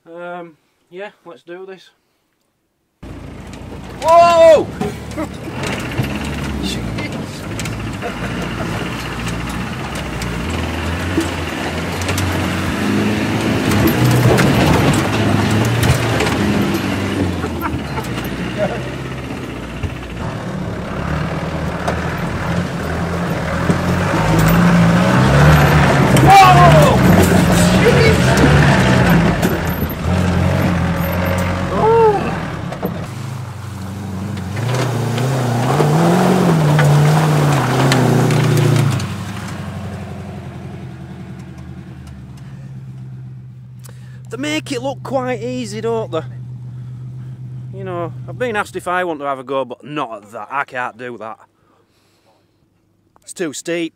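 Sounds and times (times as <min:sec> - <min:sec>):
off-road vehicle engine revving: 0:03.0 - 0:49.0.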